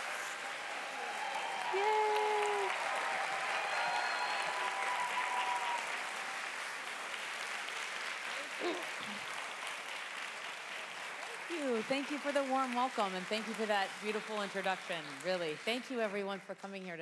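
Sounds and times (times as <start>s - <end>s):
audience applauding: 0.0s - 16.3s.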